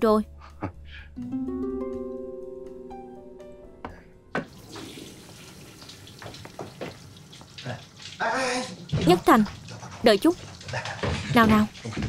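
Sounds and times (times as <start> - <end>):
tap water running into sink: 4.4 - 12.0.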